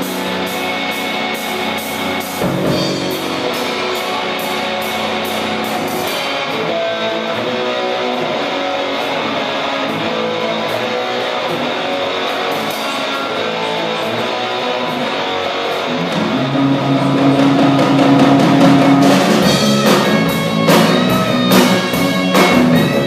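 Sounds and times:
live rock band playing: 0:00.0 - 0:23.0.

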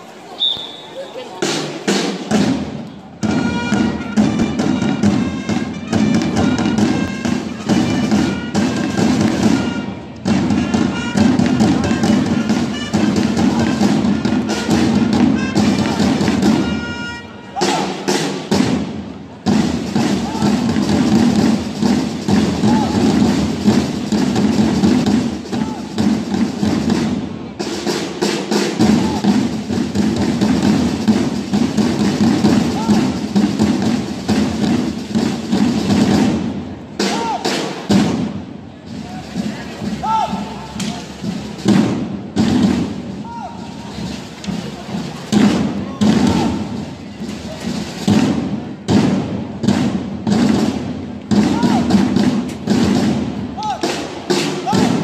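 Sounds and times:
parade drums playing march rhythm: 0:00.2 - 0:55.0
long-held trumpet notes: 0:03.3 - 0:17.6.

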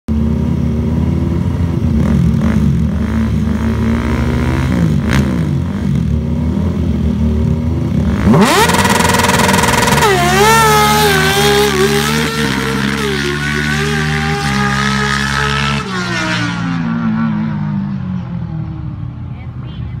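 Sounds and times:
engine running at full throttle: 0:00.1 - 0:17.2.

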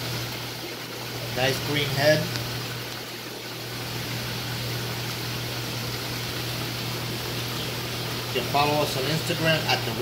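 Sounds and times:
aquarium water hissing: 0:00.0 - 0:10.0
low pump hum: 0:00.0 - 0:10.0.

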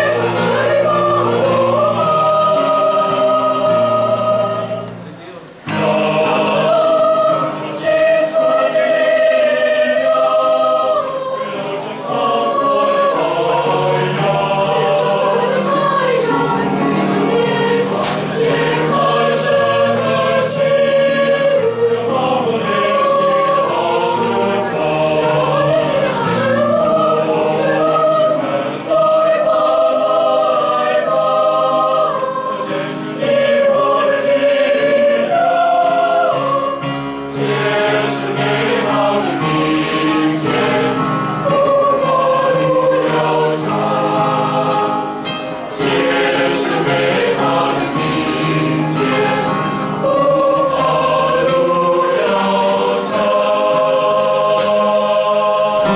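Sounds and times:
choir singing in harmony: 0:00.0 - 0:55.9.

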